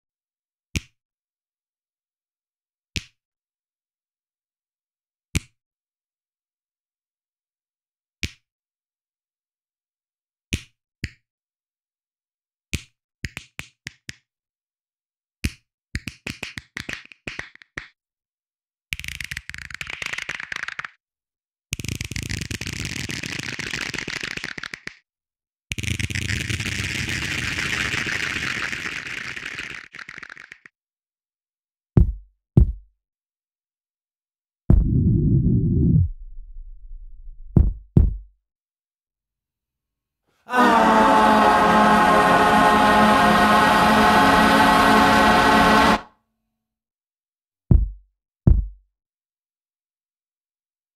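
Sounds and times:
man singing long low note: 0:40.5 - 0:46.0.

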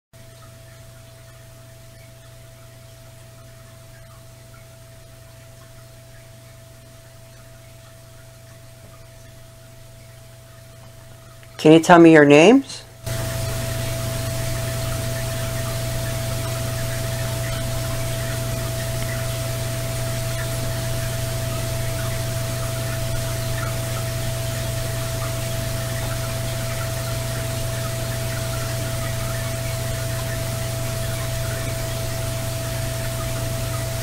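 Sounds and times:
constant low hum: 0:00.2 - 0:34.0
steady hiss: 0:11.1 - 0:34.0.

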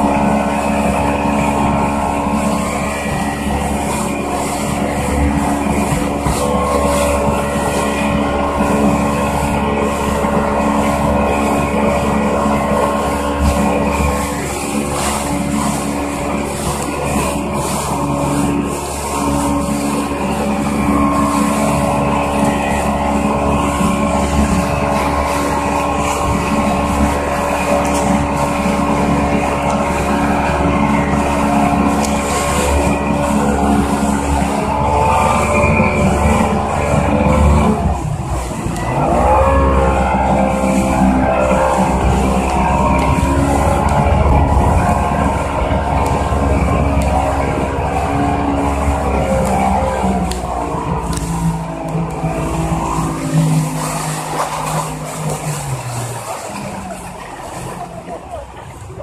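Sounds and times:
motorboat engine: 0:00.0 - 0:59.0
water rushing: 0:00.0 - 0:59.0
wind: 0:00.0 - 0:59.0.

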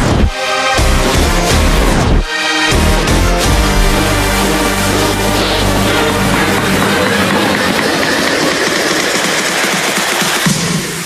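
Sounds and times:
music: 0:00.0 - 0:11.0
rushing crackling noise: 0:03.4 - 0:10.5.

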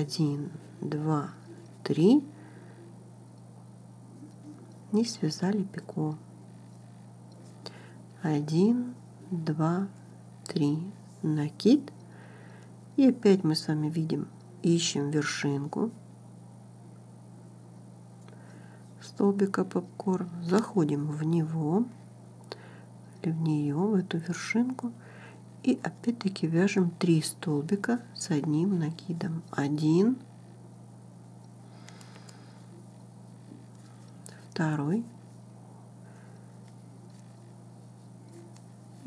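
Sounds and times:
faint low hum with hiss: 0:00.0 - 0:39.0.

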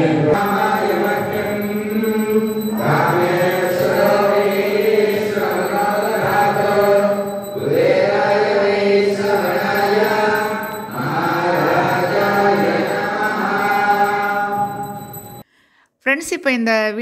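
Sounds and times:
voices chanting a hymn: 0:00.0 - 0:15.4.

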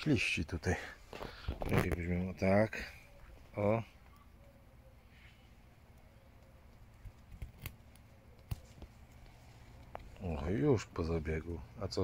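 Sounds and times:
knife cutting plant clicks: 0:06.4 - 0:08.6.

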